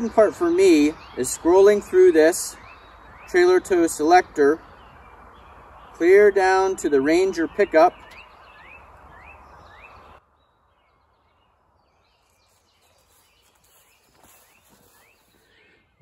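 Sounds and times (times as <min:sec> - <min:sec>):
bird chirping: 0:00.0 - 0:16.0.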